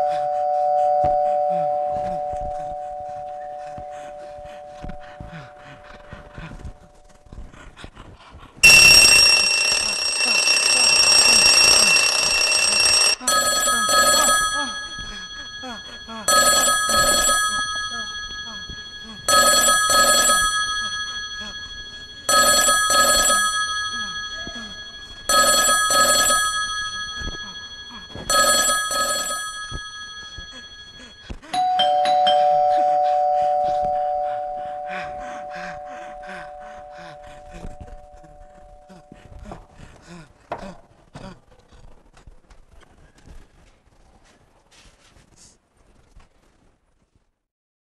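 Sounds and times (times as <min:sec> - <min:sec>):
electric bell ringing: 0:00.0 - 0:05.3, 0:08.6 - 0:39.1
two-note ding-dong chime: 0:00.0 - 0:05.4, 0:30.4 - 0:38.2
telephone double ring: 0:08.6 - 0:38.9.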